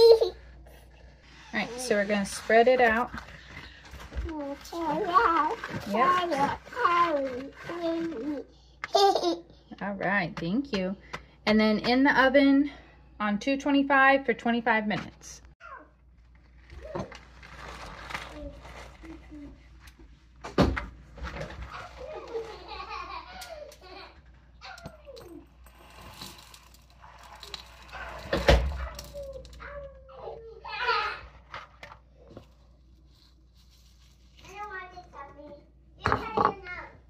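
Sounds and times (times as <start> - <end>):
salt poured through funnel: 25.7 - 28.4.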